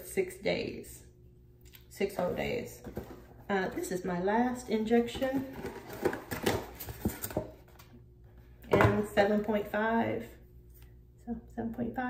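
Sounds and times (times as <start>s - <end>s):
cardboard rustling: 5.1s - 7.8s.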